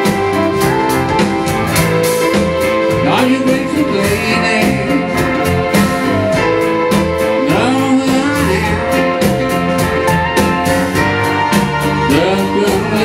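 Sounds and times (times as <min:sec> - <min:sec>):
grand piano: 0:00.0 - 0:13.0
man singing: 0:02.8 - 0:06.1, 0:07.2 - 0:09.7, 0:11.8 - 0:13.0.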